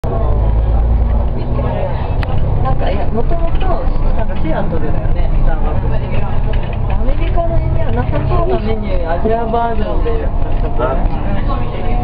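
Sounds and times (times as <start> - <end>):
bus interior rumble: 0.0 - 12.0
faint voices: 0.0 - 12.0.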